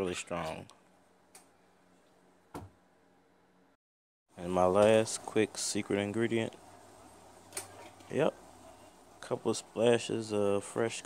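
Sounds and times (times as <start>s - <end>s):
faint steady hum: 4.4s - 11.0s.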